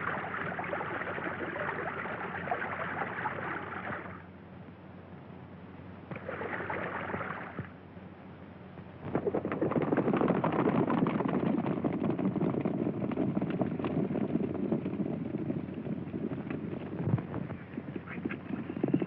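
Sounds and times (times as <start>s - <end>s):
horses galloping hoofbeats: 9.1s - 19.0s.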